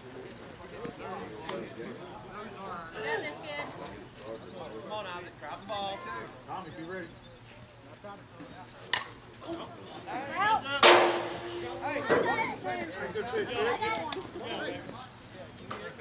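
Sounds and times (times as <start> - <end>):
softball bat hitting ball: 10.8 - 11.6.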